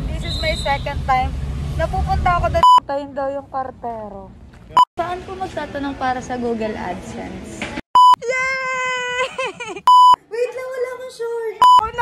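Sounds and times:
high-pitched beep: 0:02.6 - 0:02.8, 0:08.0 - 0:08.2, 0:09.9 - 0:10.2, 0:11.6 - 0:11.9
high-pitched excited voice: 0:08.2 - 0:09.4.

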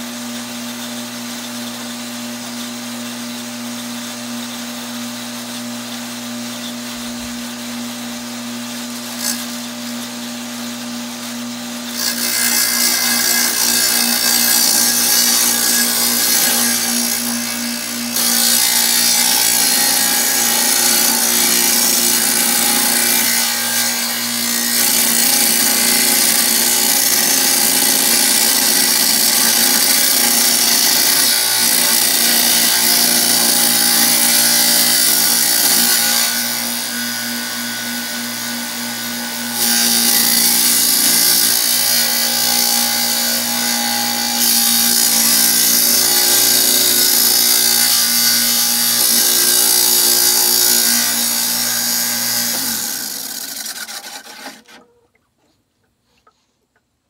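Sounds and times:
wet tile saw cutting brick: 0:00.0 - 0:54.9.

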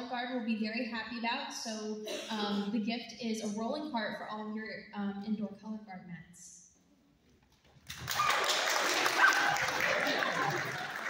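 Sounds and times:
audience applauding and cheering: 0:07.8 - 0:11.0.

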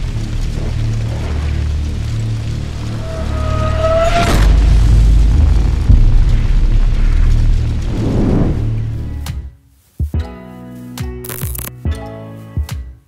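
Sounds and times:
cinematic boom hit: 0:00.0 - 0:09.5
deep rumble: 0:00.0 - 0:09.5.

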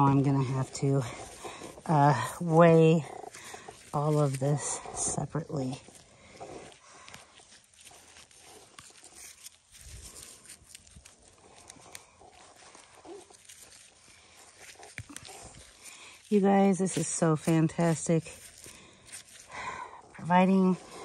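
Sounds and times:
rustling and scraping of soil: 0:00.0 - 0:21.0.

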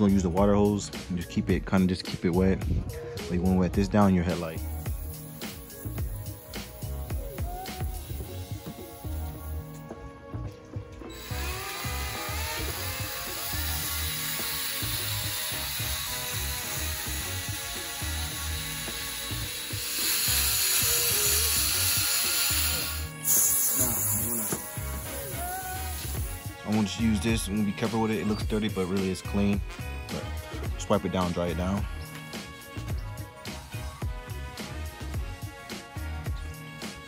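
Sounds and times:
background music with steady beat: 0:00.0 - 0:37.0
drill sanding hiss: 0:04.3 - 0:09.8, 0:11.1 - 0:27.0
water spraying from hose: 0:04.5 - 0:09.8, 0:11.1 - 0:26.9.

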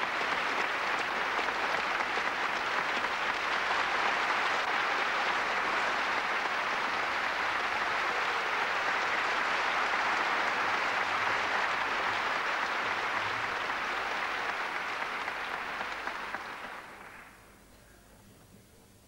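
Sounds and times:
audience applauding: 0:00.0 - 0:17.6.

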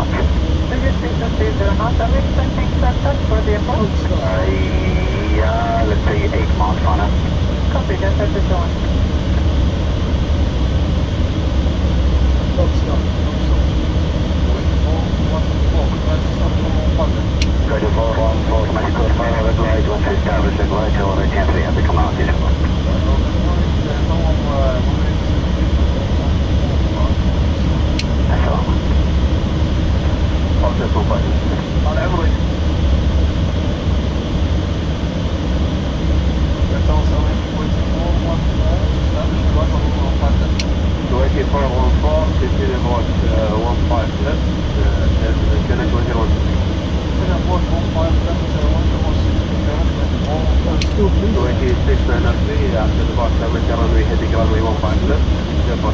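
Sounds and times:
faint radio chatter voices: 0:00.0 - 0:10.2, 0:12.4 - 0:29.1, 0:29.8 - 0:32.6, 0:36.6 - 0:55.9
airliner cockpit airflow and engines: 0:00.0 - 0:55.9.

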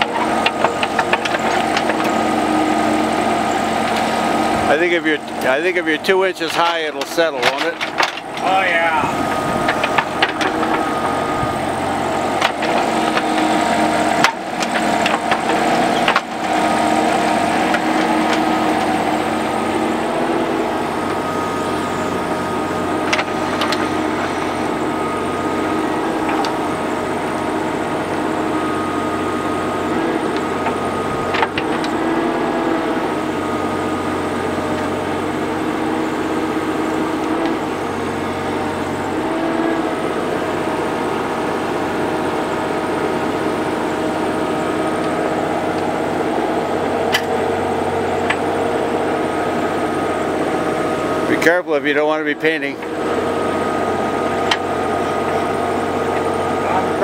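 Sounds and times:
bucket knocking and scraping rocks: 0:00.0 - 0:02.2, 0:09.3 - 0:11.6, 0:12.2 - 0:16.7
excavator diesel engine running: 0:00.0 - 0:57.0.

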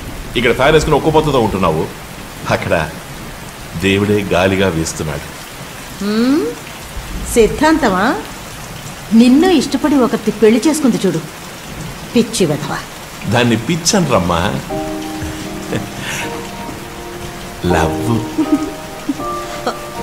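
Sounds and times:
spoken dialogue: 0:00.4 - 0:06.6, 0:07.2 - 0:08.5, 0:09.1 - 0:11.3, 0:12.1 - 0:19.9
steady hiss: 0:13.2 - 0:20.0
film score sustained chord: 0:13.4 - 0:20.0.

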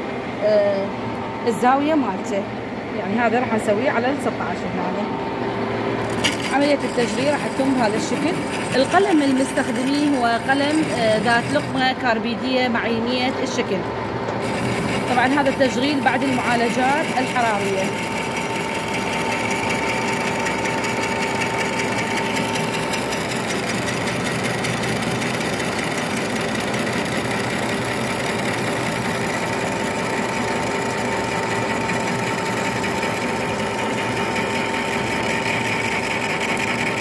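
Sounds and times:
constant machine whine: 0:00.0 - 0:37.0
metal lathe cutting: 0:06.0 - 0:12.0, 0:14.4 - 0:37.0.

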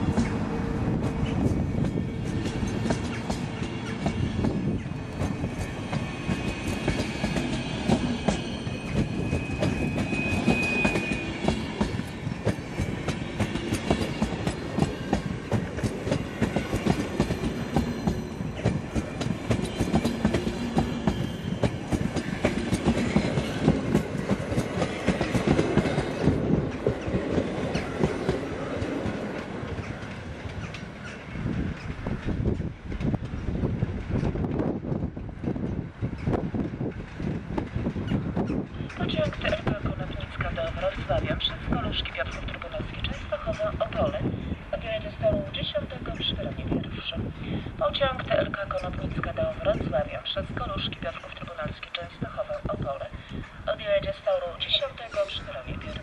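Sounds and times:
train wheels clicking over rail joints: 0:00.1 - 0:39.8.

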